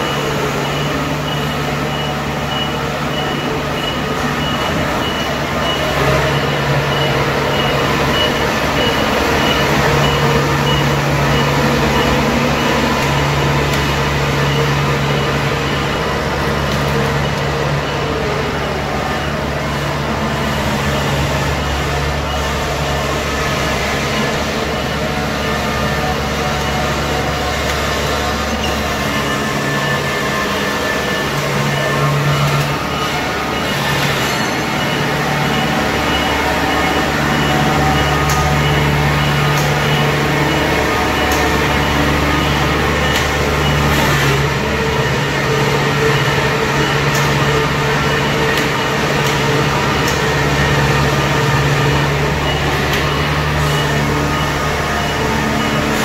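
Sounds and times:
harvester diesel engine running: 0.0s - 56.0s.

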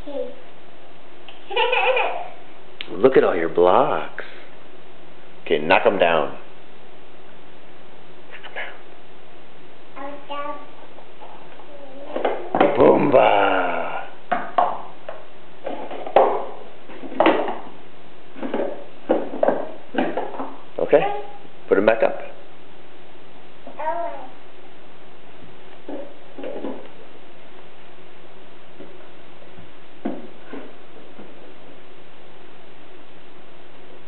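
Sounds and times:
background hiss: 0.0s - 34.0s
toddler vocal sounds: 10.0s - 12.6s, 23.7s - 24.4s.

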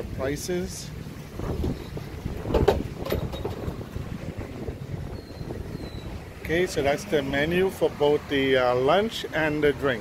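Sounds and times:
wind buffeting microphone: 0.0s - 9.0s
sharp knocks: 2.5s - 3.8s.

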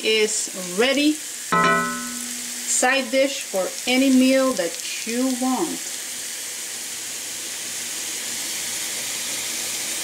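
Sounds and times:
mushrooms sizzling in a pan: 0.0s - 10.0s.

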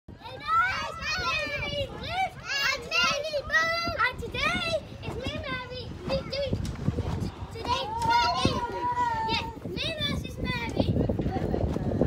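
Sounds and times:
children calling out: 0.2s - 6.6s, 7.5s - 10.8s.

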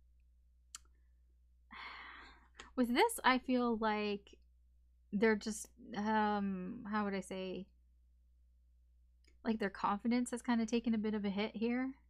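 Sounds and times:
breathy sigh: 1.7s - 2.5s.

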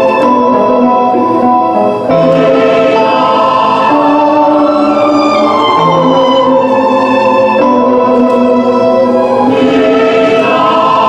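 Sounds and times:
choir-like vocal chords music: 0.0s - 11.0s.

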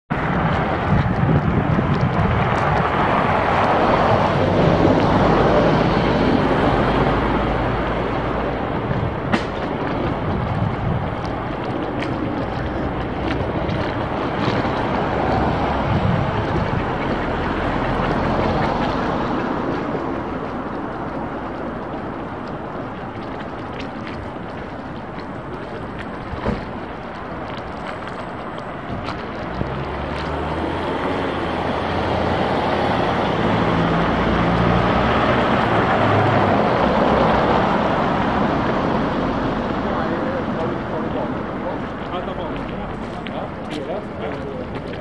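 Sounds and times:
low street rumble: 0.1s - 45.0s
wind on microphone: 0.1s - 45.0s.

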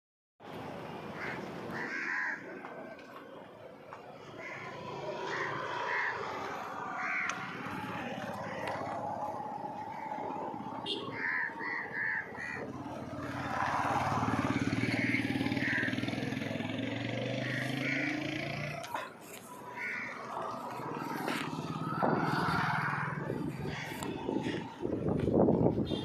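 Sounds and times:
crows cawing: 1.2s - 2.6s, 4.3s - 10.2s, 11.0s - 24.7s
motorcycle engine approaching: 4.4s - 11.0s, 12.4s - 26.0s.

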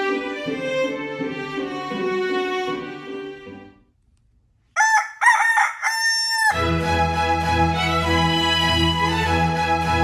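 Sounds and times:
rooster crowing: 4.8s - 6.7s.

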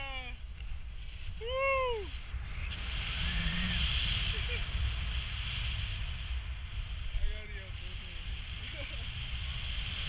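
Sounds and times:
high wind hiss: 0.0s - 10.0s
wind rumble on microphone: 0.0s - 10.0s
person whooping: 1.4s - 2.1s.

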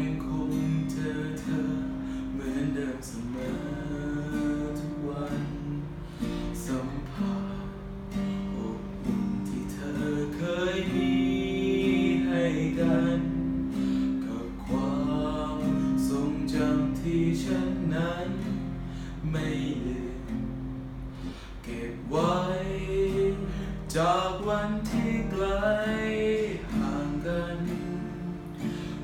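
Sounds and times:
guitar accompaniment: 0.0s - 29.0s
man singing with vibrato: 0.0s - 29.0s.

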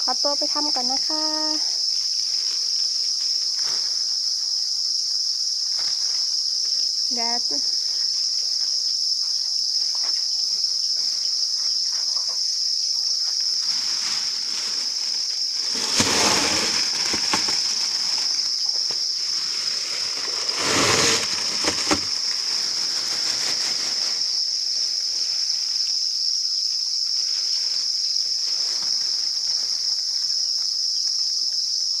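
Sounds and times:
crickets chirping: 0.0s - 32.0s
rustling: 13.2s - 25.6s.

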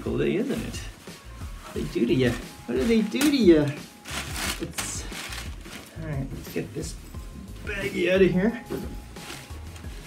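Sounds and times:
cloth rustling: 0.0s - 10.0s
soft background music: 0.0s - 10.0s.

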